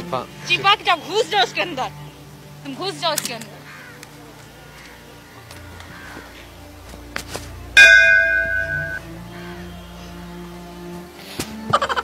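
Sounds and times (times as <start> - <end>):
bell ringing: 7.8 - 9.0.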